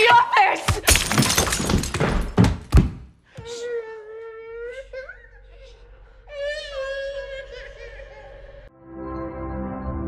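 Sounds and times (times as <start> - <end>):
glass shattering: 0.8 - 2.4
long wailing cry: 3.5 - 8.7.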